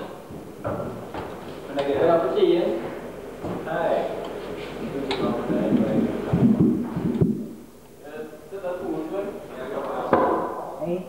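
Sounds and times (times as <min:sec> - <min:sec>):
indistinct voices: 0:03.6 - 0:07.3.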